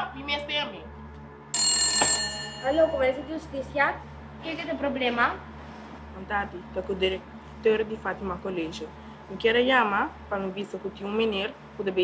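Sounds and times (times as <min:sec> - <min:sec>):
telephone ringing: 0:01.6 - 0:03.3.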